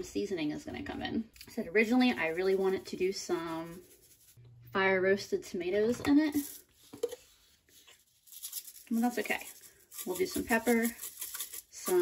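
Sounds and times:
person speaking: 1.4 - 6.6, 8.8 - 11.1.

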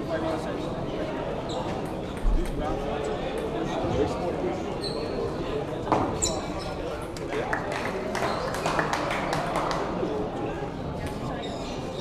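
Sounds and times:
voices in a sports hall: 0.0 - 12.0.

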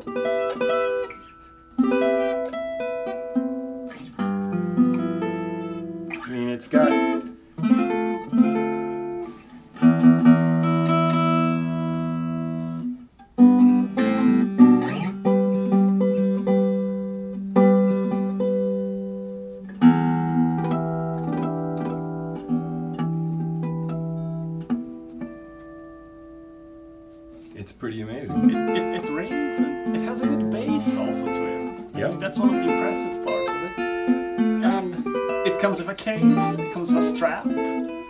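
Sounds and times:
acoustic guitar playing: 0.0 - 38.0.

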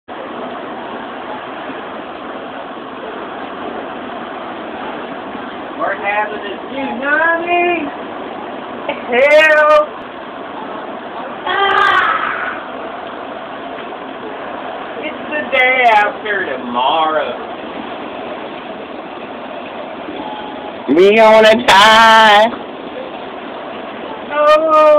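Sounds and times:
heavy rain: 0.1 - 24.9
wind: 0.1 - 24.9.

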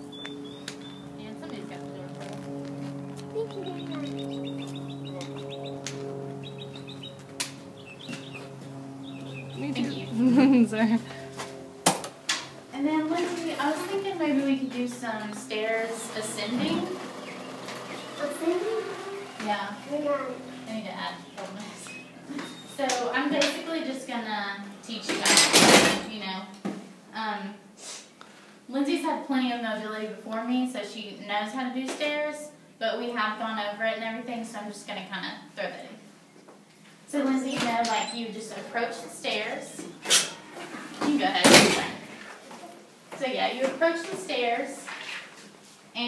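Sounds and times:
small birds chirping: 0.0 - 10.8, 15.3 - 22.8
steady hum: 0.0 - 27.8
indistinct talking: 0.7 - 11.4, 12.7 - 26.2.

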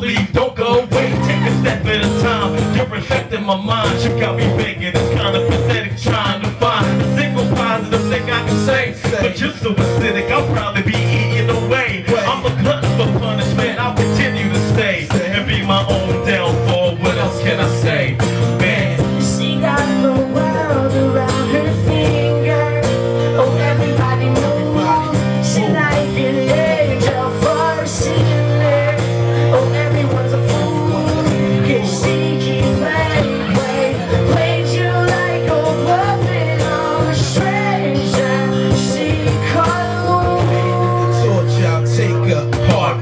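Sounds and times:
live rock-blues band: 0.0 - 43.0.

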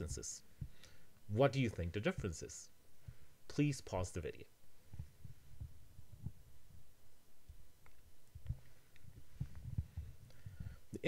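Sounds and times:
faint low thuds: 0.0 - 0.8, 4.7 - 11.0
low hum: 0.0 - 11.0.

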